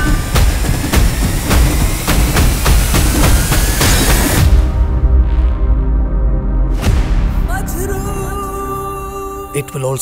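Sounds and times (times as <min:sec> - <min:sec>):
pounding percussive hits: 0:00.0 - 0:05.2.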